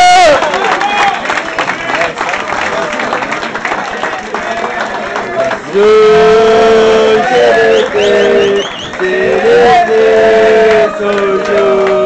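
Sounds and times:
group singing a chant: 5.3 - 12.0.

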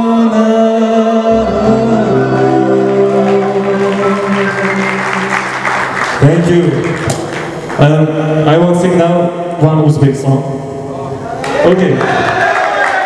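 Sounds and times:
man singing: 0.0 - 5.6
live band playing: 1.3 - 8.4.

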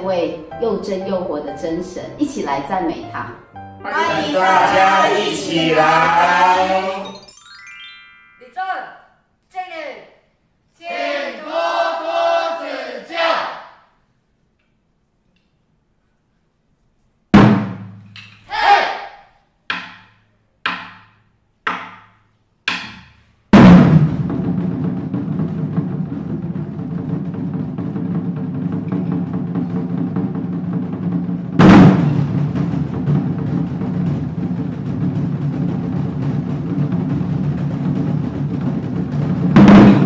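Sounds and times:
group shouting: 3.9 - 7.2, 10.8 - 13.7, 18.5 - 19.2
barrel drum strokes: 23.6 - 40.0.

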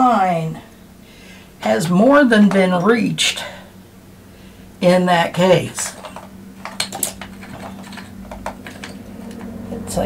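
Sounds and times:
small hard objects clicking on table: 5.9 - 9.6.

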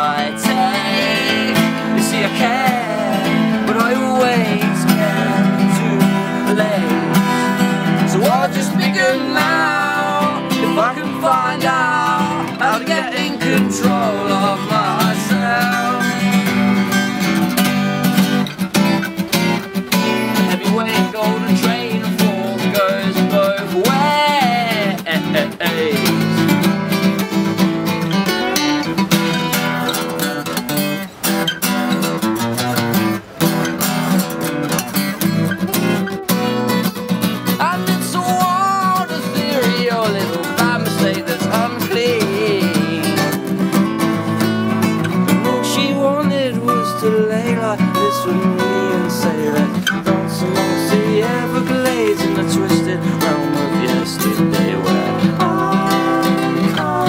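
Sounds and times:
bending melody line: 0.0 - 57.0
strummed acoustic guitars: 0.0 - 57.0.

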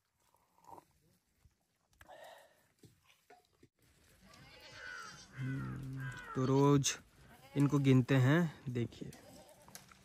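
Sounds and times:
sheep and goats bleating: 4.2 - 8.1, 9.1 - 9.9.

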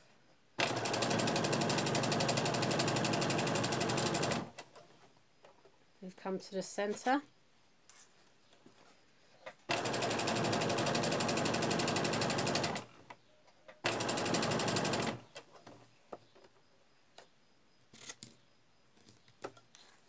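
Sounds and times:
electric sewing machine stitching: 0.6 - 4.6, 9.7 - 12.9, 13.8 - 15.2.

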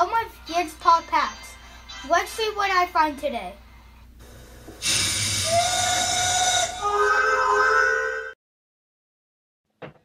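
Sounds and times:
hiss: 4.8 - 6.7
held high tone: 4.8 - 8.4.

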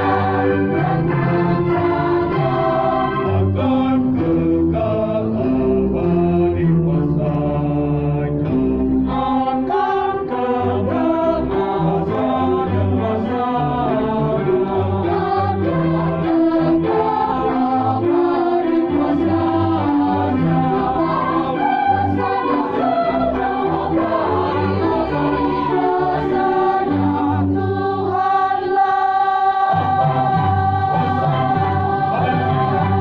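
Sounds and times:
choir singing long chords: 0.0 - 33.0.

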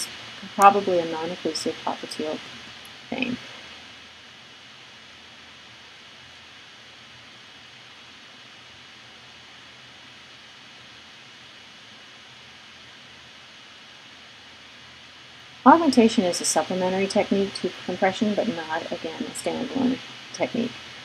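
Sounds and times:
faint background hiss: 0.0 - 21.0.

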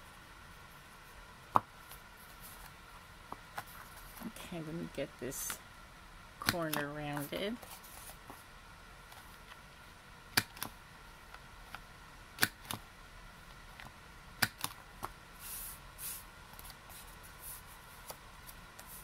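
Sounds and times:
paper rustling: 7.6 - 8.4.

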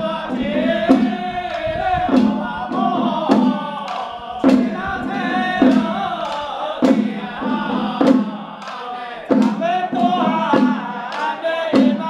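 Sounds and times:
men chanting in unison: 0.0 - 12.0
sharp percussion strikes: 0.0 - 12.0.

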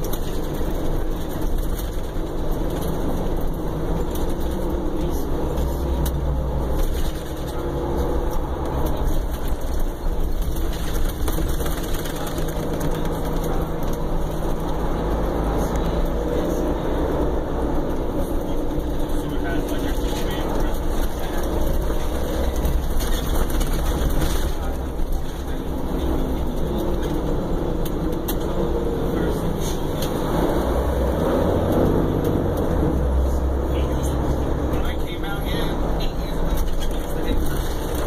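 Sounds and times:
diesel engine drone: 0.0 - 38.0
road and tyre noise: 0.0 - 38.0.

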